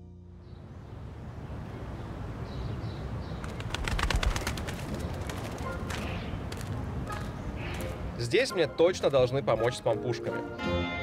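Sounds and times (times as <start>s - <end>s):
pigeons: 3.4s - 8.0s.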